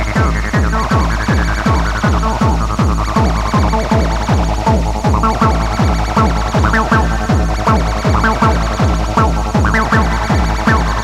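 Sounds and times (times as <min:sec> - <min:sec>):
fast pitch-dropping kick drum: 0:00.0 - 0:11.0
squelchy acid synth line: 0:00.0 - 0:11.0.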